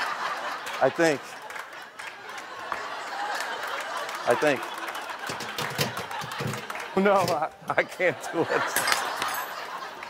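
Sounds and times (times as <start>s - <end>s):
audience chuckling and murmuring: 0.0s - 10.0s.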